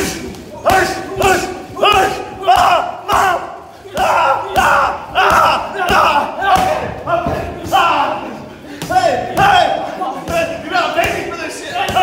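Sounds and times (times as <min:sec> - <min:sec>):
loud shouting: 0:00.0 - 0:12.0.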